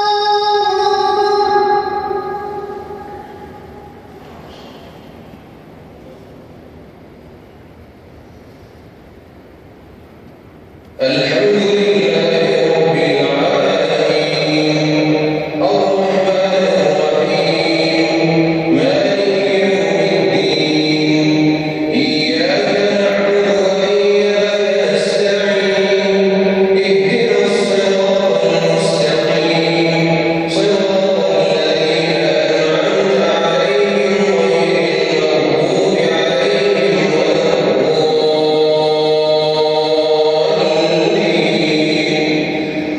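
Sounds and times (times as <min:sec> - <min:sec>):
man chanting over loudspeakers: 0:00.0 - 0:07.3, 0:10.8 - 0:42.9.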